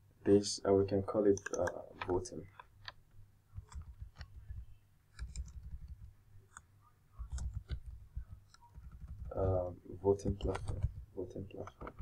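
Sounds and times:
computer keyboard keystrokes: 0:05.2 - 0:06.1, 0:07.3 - 0:09.4.

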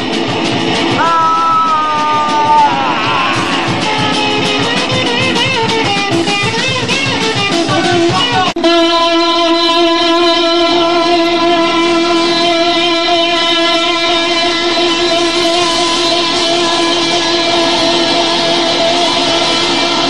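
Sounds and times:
distorted electric guitar: 0:00.0 - 0:20.0.

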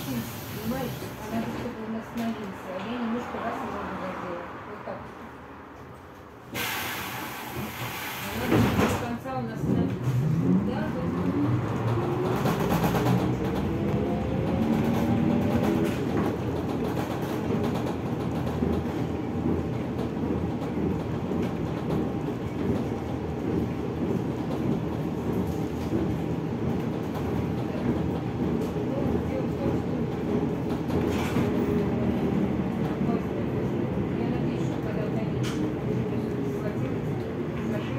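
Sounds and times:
low rumble of moving bus: 0:00.0 - 0:37.9.

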